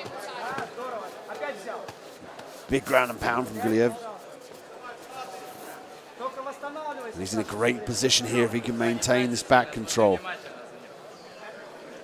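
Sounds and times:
commentary speech: 0:00.0 - 0:12.0.

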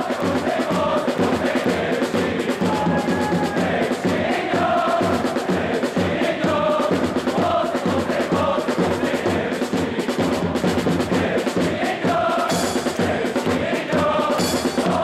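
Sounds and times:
bass drum beating: 0:00.0 - 0:15.0
crowd chanting: 0:00.0 - 0:15.0.

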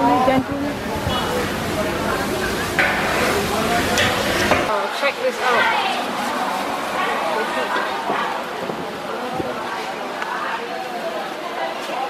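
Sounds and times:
low rumble of fire: 0:00.3 - 0:04.7
meat sizzling in oven: 0:00.8 - 0:04.7.

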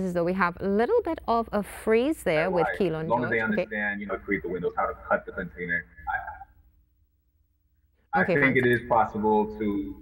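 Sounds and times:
faint steady hum: 0:00.0 - 0:10.0
voice trailing off: 0:03.1 - 0:06.6.

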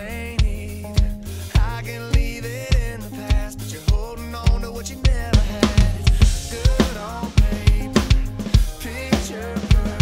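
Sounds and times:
acoustic drum kit: 0:00.0 - 0:10.0
electronic pop backing track: 0:00.0 - 0:10.0.

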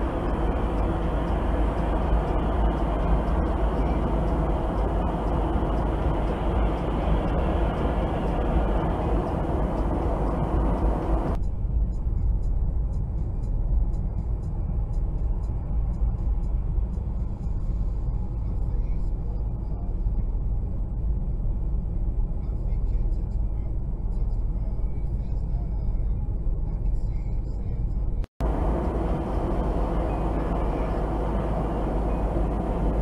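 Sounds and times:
car road and engine noise: 0:00.0 - 0:33.0.

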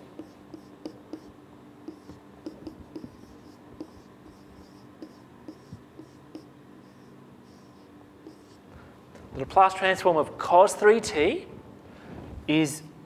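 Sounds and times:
marker scratching on whiteboard: 0:00.0 - 0:08.6.

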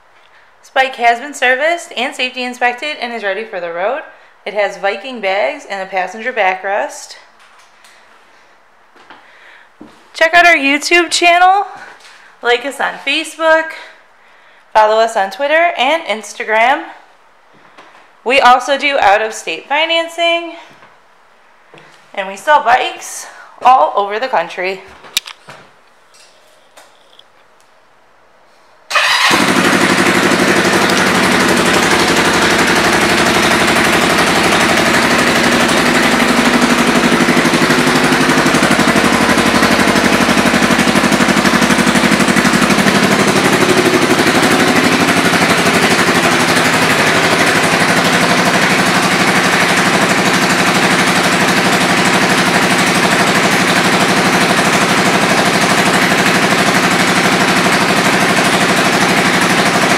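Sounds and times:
motorcycle engine idling: 0:28.9 - 0:59.9.

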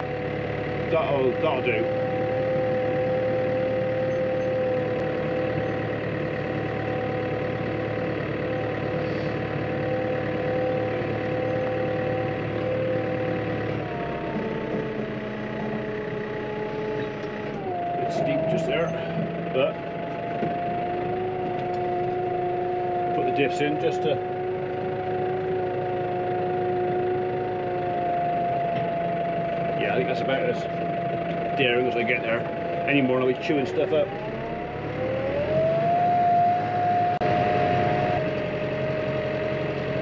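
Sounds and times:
tractor engine running: 0:00.0 - 0:40.0.

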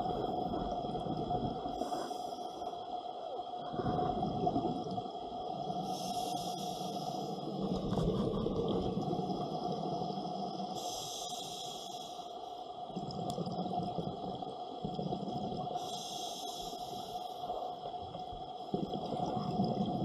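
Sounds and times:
underwater regulator bubbles: 0:12.9 - 0:20.0.

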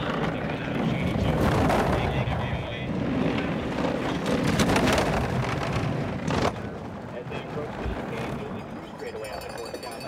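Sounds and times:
bobsled runners rumbling on ice: 0:00.0 - 0:10.0.

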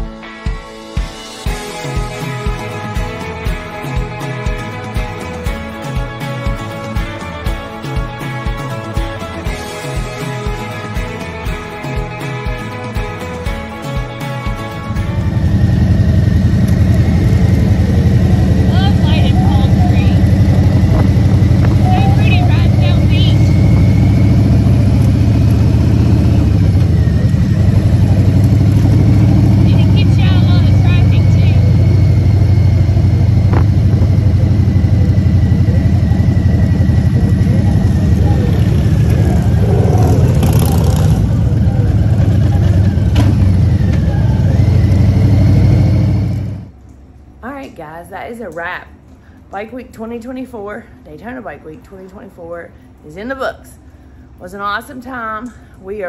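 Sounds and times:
motorcycle engine running: 0:01.5 - 0:46.7.

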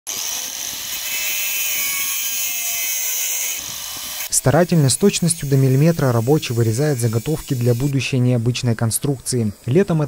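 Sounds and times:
angle grinder cutting steel: 0:00.1 - 0:08.0.

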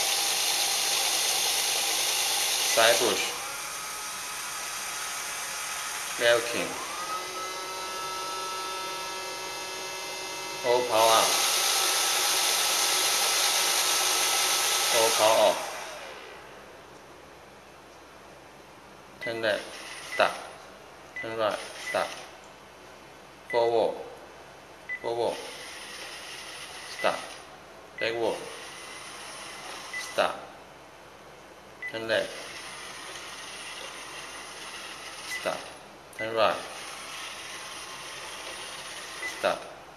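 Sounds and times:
robot vacuum fan whine: 0:00.0 - 0:16.8, 0:19.6 - 0:20.4, 0:25.3 - 0:27.5, 0:28.2 - 0:30.3, 0:32.2 - 0:35.8, 0:36.4 - 0:39.6
vacuum brushes humming: 0:00.0 - 0:17.0, 0:28.2 - 0:30.3, 0:32.2 - 0:39.7.

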